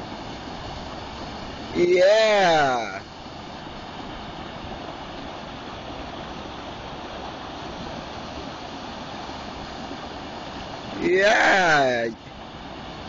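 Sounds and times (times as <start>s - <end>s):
water rushing over a weir: 0.0s - 13.0s.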